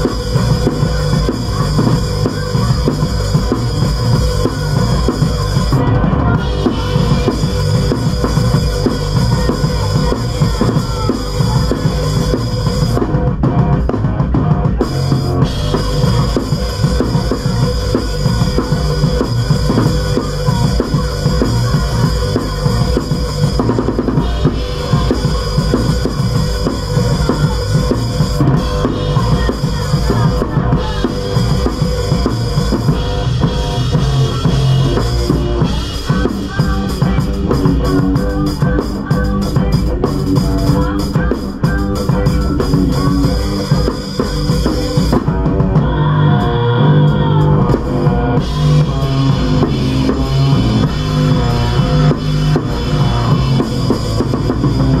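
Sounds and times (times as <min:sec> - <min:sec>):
drum kit playing: 0:00.0 - 0:55.0
electric guitar: 0:00.0 - 0:55.0.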